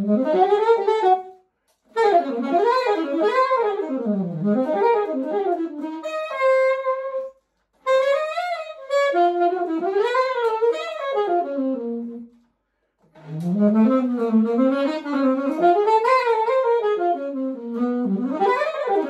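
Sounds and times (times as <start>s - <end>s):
solo saxophone playing: 0.0s - 19.0s.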